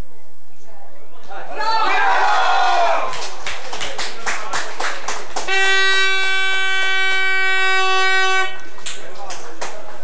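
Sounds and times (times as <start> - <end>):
spectators clapping: 1.9 - 10.0
air horn blast: 5.4 - 8.8.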